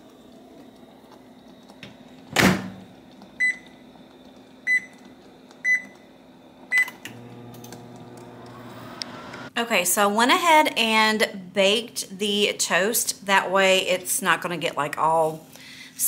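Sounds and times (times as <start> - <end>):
microwave oven humming: 0.0 - 9.6
microwave door shutting: 2.3 - 2.8.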